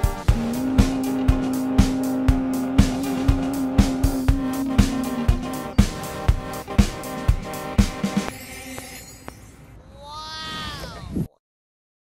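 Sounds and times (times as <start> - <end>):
music: 0.0 - 9.8.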